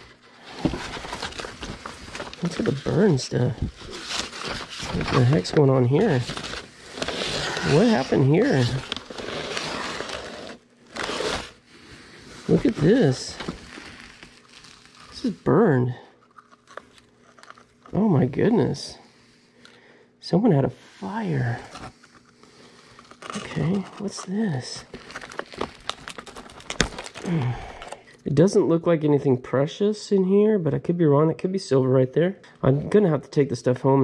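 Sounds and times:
paper and packaging rustling: 0.0s - 19.0s, 21.0s - 28.1s
faint crackles from handling a box: 12.4s - 15.4s, 21.5s - 28.1s.

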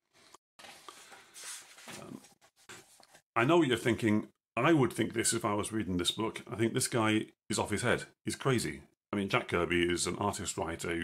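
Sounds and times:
book pages turning: 0.6s - 3.2s.

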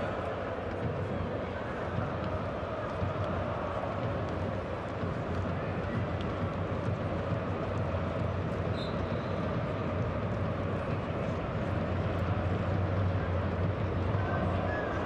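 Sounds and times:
stadium crowd rumble: 0.0s - 15.0s.

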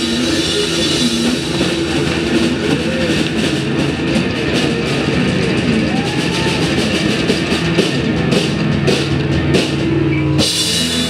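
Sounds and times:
bass guitar: 0.0s - 11.0s
distorted electric guitars: 0.0s - 11.0s
drums: 0.0s - 11.0s.

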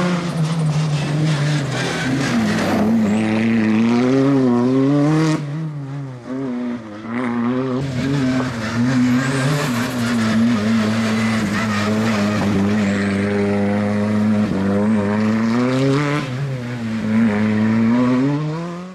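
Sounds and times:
car engine revving hard: 0.0s - 5.7s, 6.3s - 18.9s.

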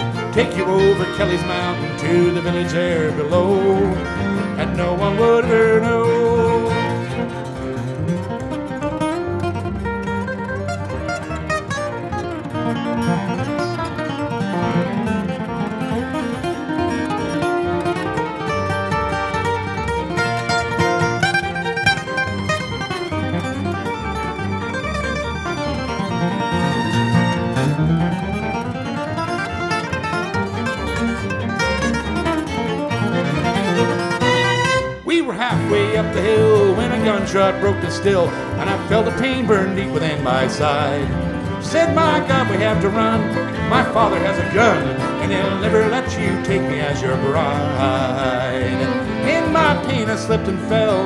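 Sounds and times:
acoustic guitar picking lead: 0.0s - 51.0s
string ensemble: 0.0s - 51.0s.

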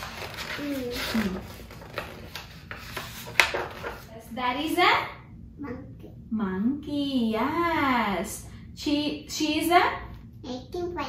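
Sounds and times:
book pages rustling: 0.0s - 4.1s.

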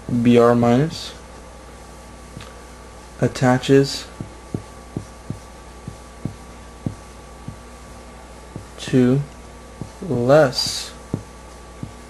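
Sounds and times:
faint electrical hum: 0.0s - 12.0s
marker writing on a board: 4.1s - 7.7s, 8.6s - 8.8s, 9.8s - 12.0s.

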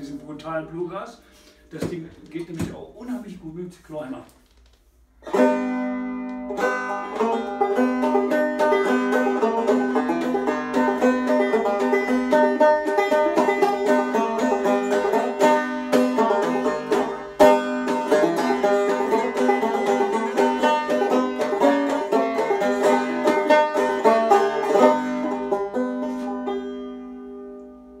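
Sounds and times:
banjo plucked clawhammer style: 5.2s - 28.0s.

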